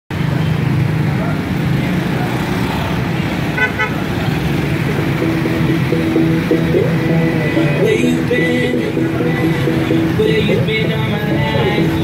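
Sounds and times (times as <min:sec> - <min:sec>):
road traffic din: 0:00.1 - 0:12.0
horn tooting: 0:03.5 - 0:04.1
song with guitar: 0:04.8 - 0:12.0.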